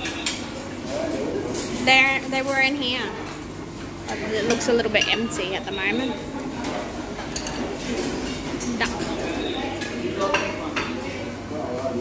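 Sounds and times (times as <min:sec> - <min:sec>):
murmur of diners' voices: 0:00.0 - 0:12.0
crockery and cutlery clinks: 0:07.2 - 0:11.0.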